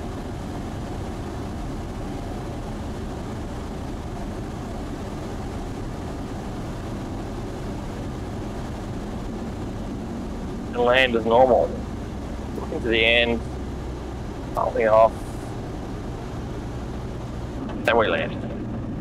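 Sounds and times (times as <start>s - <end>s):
aircraft engine and propeller hum: 0.0s - 19.0s
airflow: 0.0s - 19.0s.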